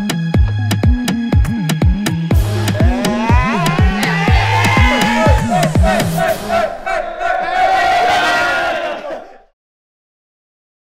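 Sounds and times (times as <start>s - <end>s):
men shouting and cheering: 2.3s - 9.5s.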